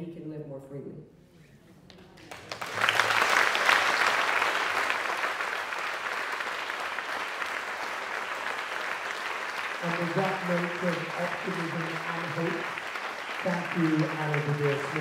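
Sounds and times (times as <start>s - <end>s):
audience applauding: 1.9s - 15.0s.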